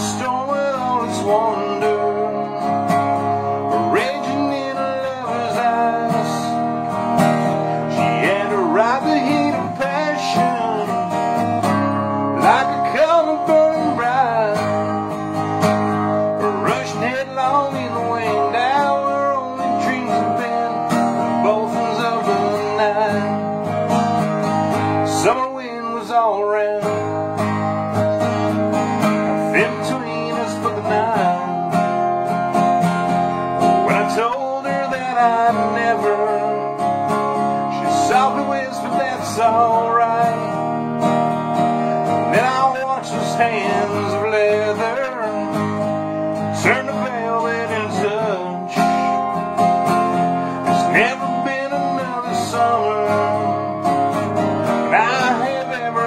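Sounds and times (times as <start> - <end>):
man singing: 0.0 - 31.9, 33.3 - 41.0, 42.1 - 56.0
acoustic guitar strumming: 0.0 - 56.0.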